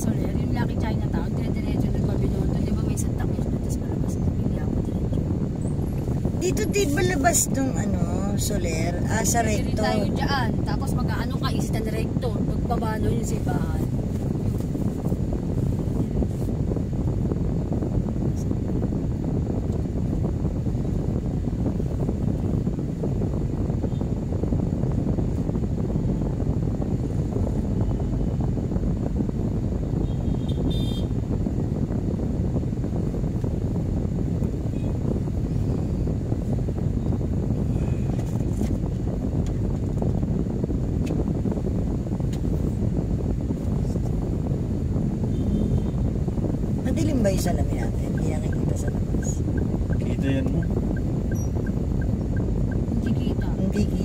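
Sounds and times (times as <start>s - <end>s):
motorcycles and traffic: 0.0s - 54.0s.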